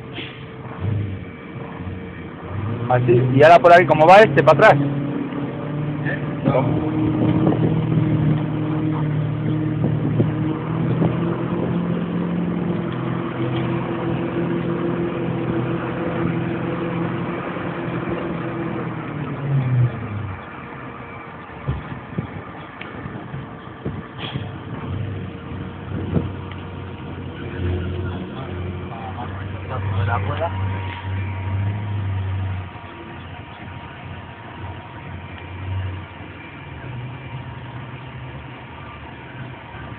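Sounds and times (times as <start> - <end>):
heavy truck engine running: 0.0 - 39.9.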